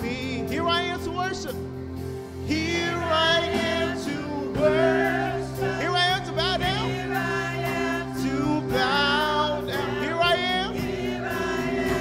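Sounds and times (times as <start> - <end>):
gospel group singing: 2.3 - 12.0.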